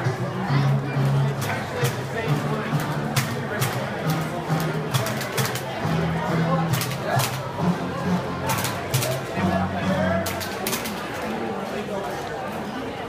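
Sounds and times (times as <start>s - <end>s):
music over loudspeakers: 0.0s - 10.7s
crowd chatter: 0.0s - 13.0s.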